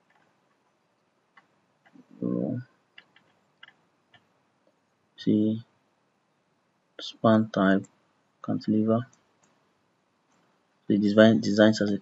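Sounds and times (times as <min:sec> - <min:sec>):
computer mouse clicks: 0:00.0 - 0:02.0, 0:02.9 - 0:04.8, 0:09.0 - 0:09.6.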